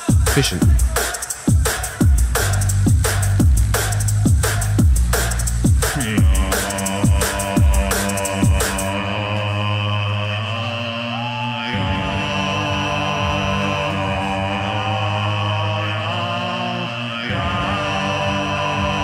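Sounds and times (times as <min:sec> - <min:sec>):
looped vocal drones: 0:05.8 - 0:19.0.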